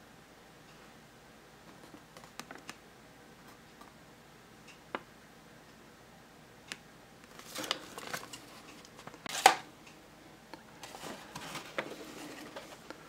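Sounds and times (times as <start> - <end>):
paper and cardboard rustling: 7.3 - 9.6, 10.8 - 13.0.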